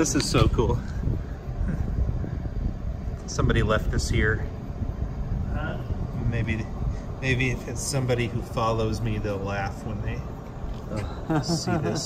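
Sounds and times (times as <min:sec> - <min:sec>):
low rumbling drone: 0:00.0 - 0:12.0.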